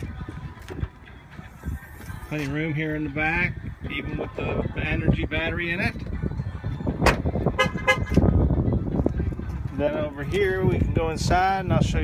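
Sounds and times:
car horn toots: 0:07.6 - 0:08.2.

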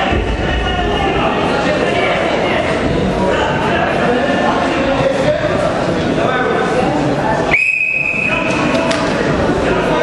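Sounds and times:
crowd chatter: 0:00.0 - 0:10.0
referee's whistle blast: 0:07.5 - 0:08.5.

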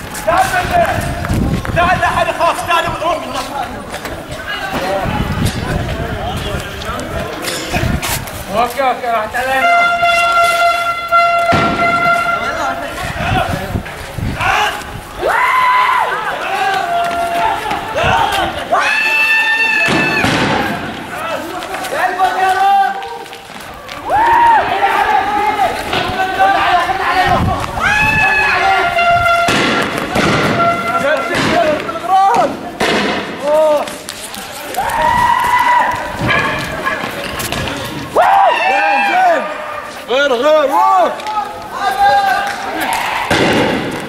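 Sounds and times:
street noise: 0:00.0 - 0:44.0
protesters shouting: 0:09.4 - 0:13.7, 0:14.3 - 0:32.6, 0:34.6 - 0:37.2, 0:37.8 - 0:44.0
sharp bang: 0:10.6 - 0:12.6, 0:19.8 - 0:21.0, 0:29.0 - 0:33.4, 0:43.3 - 0:44.0
sharp crack: 0:19.8 - 0:21.9, 0:29.4 - 0:34.1, 0:42.4 - 0:44.0.

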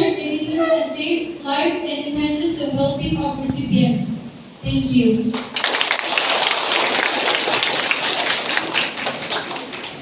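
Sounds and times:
audience applauding: 0:05.4 - 0:10.0.

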